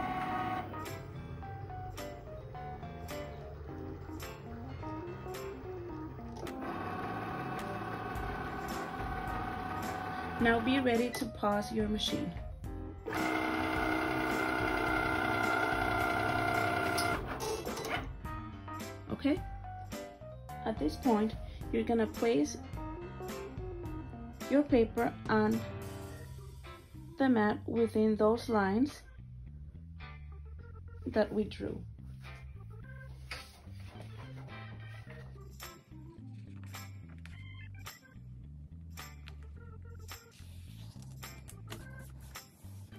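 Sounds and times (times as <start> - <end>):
cutting machine motor whining: 0.0 - 1.7, 5.5 - 10.8, 13.1 - 17.4
background music with bass line: 7.2 - 42.9.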